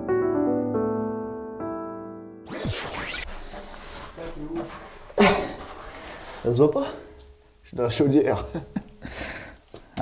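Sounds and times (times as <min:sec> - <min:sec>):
background hiss: 0:02.6 - 0:10.0.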